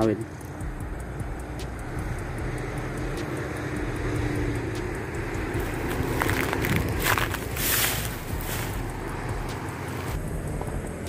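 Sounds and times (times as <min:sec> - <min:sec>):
distant road traffic: 0:00.0 - 0:11.0.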